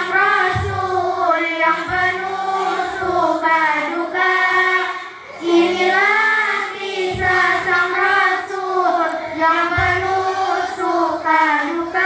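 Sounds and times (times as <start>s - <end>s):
girls singing in unison: 0.0s - 12.0s
faint low thump: 0.4s - 1.1s, 6.9s - 8.0s, 9.6s - 10.4s.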